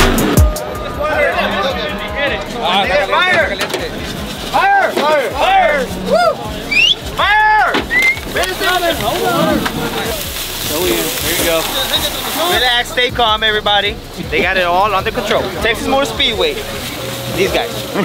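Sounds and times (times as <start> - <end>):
crowd talking and shouting: 0.0 - 18.0
loud drawn-out shout: 4.5 - 8.3.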